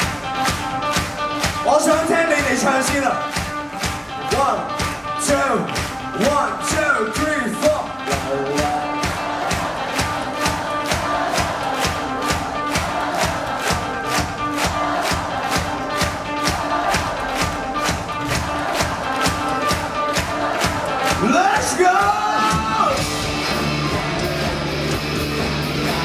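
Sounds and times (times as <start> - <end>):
crowd cheering: 0.0 - 26.0
drums fast beat: 0.0 - 26.0
electric guitars: 0.0 - 26.0.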